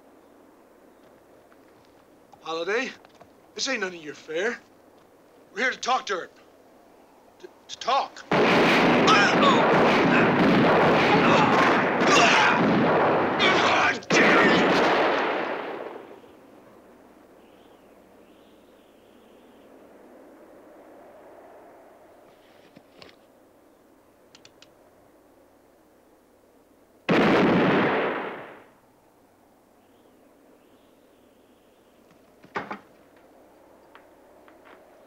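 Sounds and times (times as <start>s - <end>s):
rapid handgun shots: 8.3s - 16.2s.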